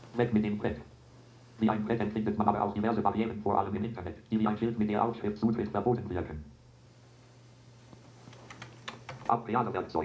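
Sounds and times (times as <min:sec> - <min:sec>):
low steady hum: 0:00.0 - 0:10.0
computer keyboard clicks: 0:08.3 - 0:09.3.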